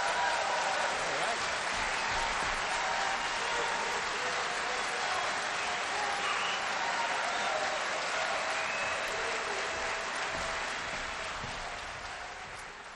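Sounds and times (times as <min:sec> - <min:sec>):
audience applauding: 0:00.0 - 0:12.9.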